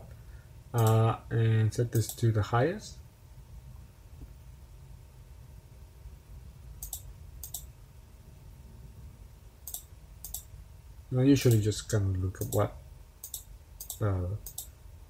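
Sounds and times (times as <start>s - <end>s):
faint low hum: 0.0s - 15.0s
computer mouse clicking: 6.8s - 7.7s, 9.6s - 10.5s, 12.4s - 12.6s, 13.2s - 14.7s.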